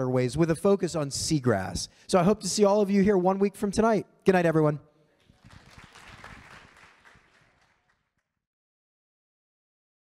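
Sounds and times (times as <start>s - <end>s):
audience applause: 5.3s - 8.1s.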